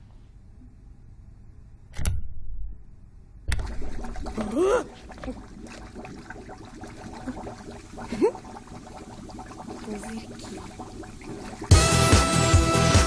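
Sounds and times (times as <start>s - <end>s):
water washing in bathtub: 3.6s - 12.4s
loud music: 11.7s - 13.0s.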